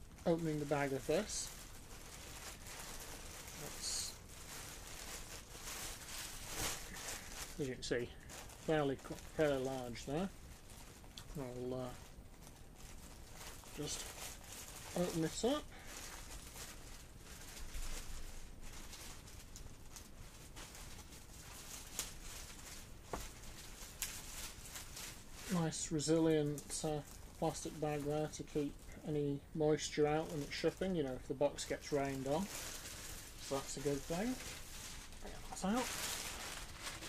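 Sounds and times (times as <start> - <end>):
plastic bag crinkling: 0.0 - 37.0.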